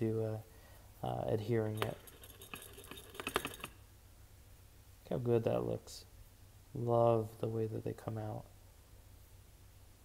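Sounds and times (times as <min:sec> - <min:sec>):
fingers tapping watch case: 0:02.4 - 0:03.8.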